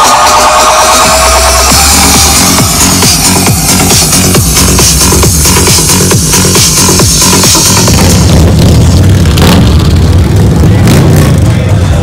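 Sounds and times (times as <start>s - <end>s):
motorcycle engines running: 1.2s - 12.0s.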